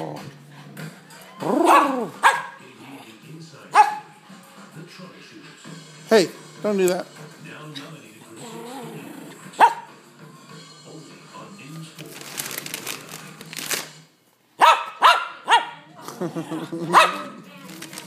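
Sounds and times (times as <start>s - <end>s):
small dog barking: 1.5s - 2.6s, 3.7s - 4.1s, 9.6s - 9.9s, 14.6s - 15.9s, 16.8s - 17.4s.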